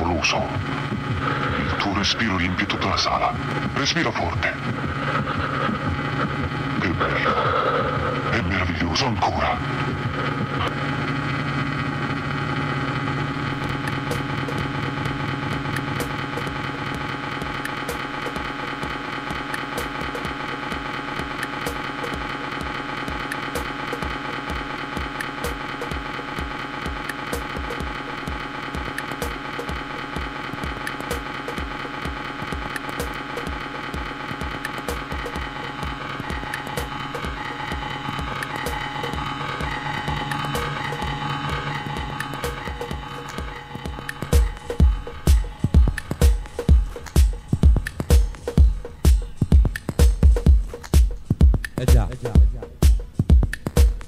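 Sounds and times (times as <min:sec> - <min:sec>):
sustained synthesizer chords: 0:00.0 - 0:54.0
steady kick drum beat: 0:00.1 - 0:54.0.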